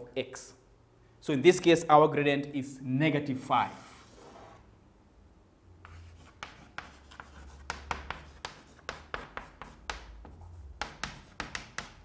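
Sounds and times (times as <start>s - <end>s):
chalk tapping and scratching: 5.8s - 12.0s.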